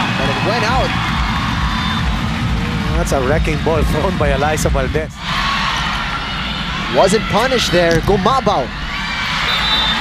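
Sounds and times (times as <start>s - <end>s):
crowd cheering: 0.0s - 10.0s.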